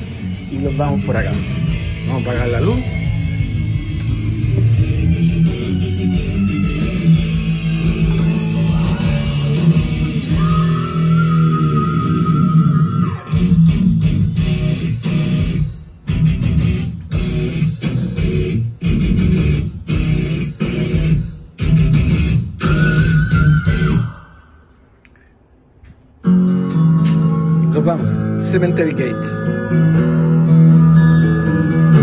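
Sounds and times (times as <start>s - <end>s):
rock music with electric guitar: 0.0s - 24.2s, 26.2s - 32.0s.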